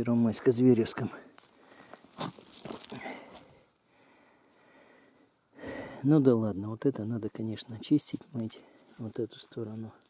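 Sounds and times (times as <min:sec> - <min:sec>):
rustling and scraping handling: 0:01.3 - 0:03.5, 0:07.4 - 0:10.0.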